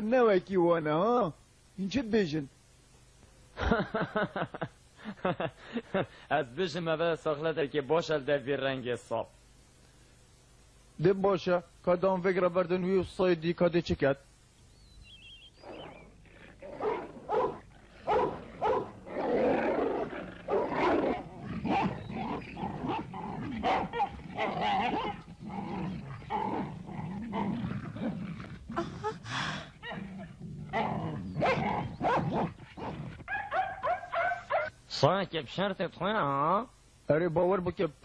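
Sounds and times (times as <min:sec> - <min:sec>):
dogs growling and barking: 0:15.6 - 0:34.7.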